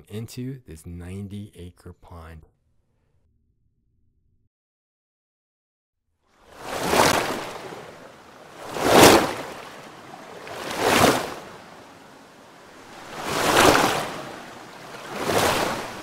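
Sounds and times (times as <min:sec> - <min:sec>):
surf-like rushing noise: 0:06.5 - 0:16.0.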